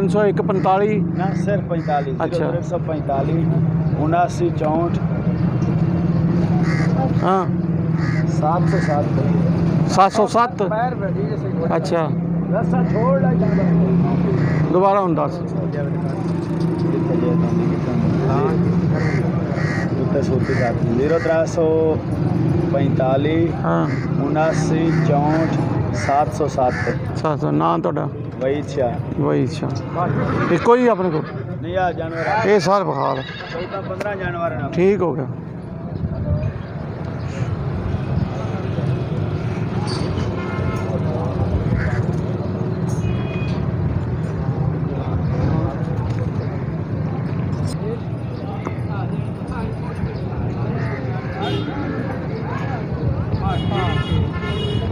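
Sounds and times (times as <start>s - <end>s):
people talking: 0.0s - 5.0s, 8.3s - 22.0s, 22.6s - 35.4s, 44.8s - 54.9s
vehicle engine rumble: 0.0s - 32.9s, 33.9s - 54.9s.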